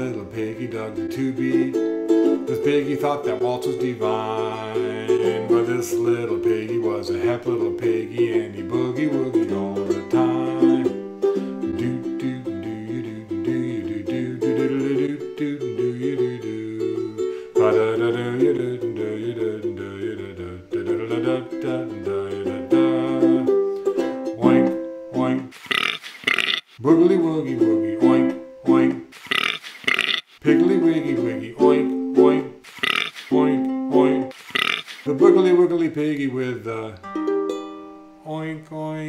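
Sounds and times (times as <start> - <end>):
ukulele playing swing tune: 0.0 - 25.6, 26.9 - 29.2, 30.4 - 34.4, 35.1 - 38.2.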